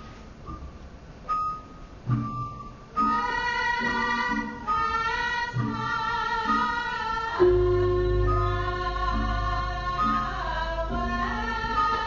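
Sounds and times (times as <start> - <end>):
gamelan bronze notes ringing: 1.3 - 12.0.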